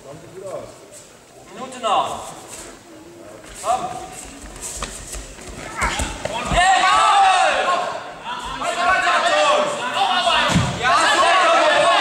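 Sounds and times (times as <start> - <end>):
voices shouting: 5.7 - 12.0.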